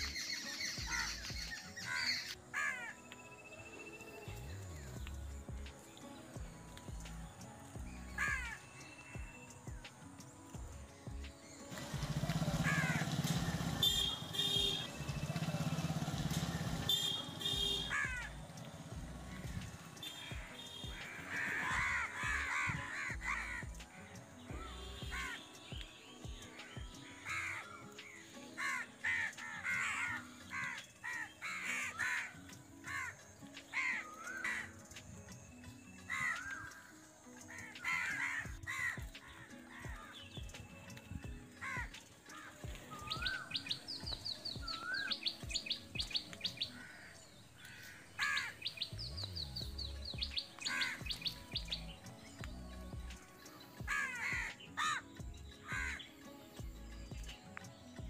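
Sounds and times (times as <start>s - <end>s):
birds chirping: 0.0s - 58.0s
fast high ticking bird calls: 0.0s - 58.0s.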